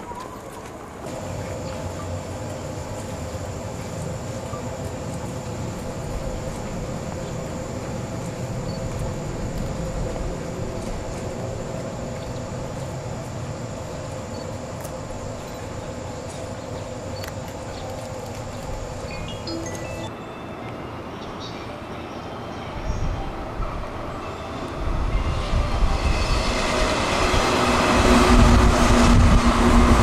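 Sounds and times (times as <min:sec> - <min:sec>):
constant hum: 0:00.0 - 0:20.2
electric train rumbling: 0:00.0 - 0:30.0.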